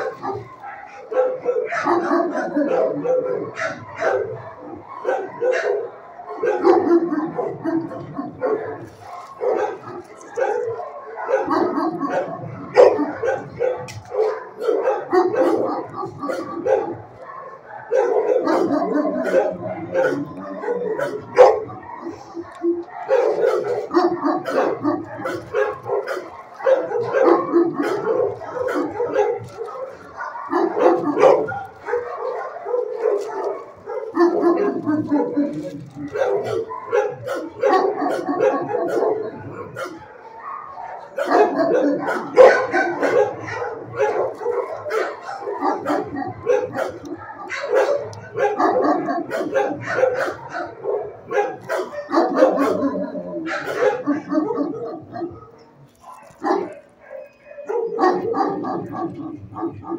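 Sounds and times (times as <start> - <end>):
dogs barking: 0.0 - 59.9
dog eating kibble from metal tray: 7.1 - 38.4.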